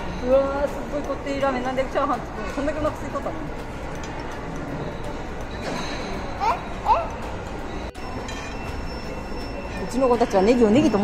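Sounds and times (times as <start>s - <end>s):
food court din: 0.0s - 11.0s.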